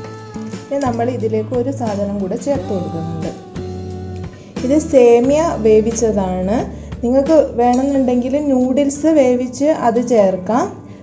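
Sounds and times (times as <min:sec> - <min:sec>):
woman talking: 0:00.7 - 0:03.5, 0:04.6 - 0:10.8.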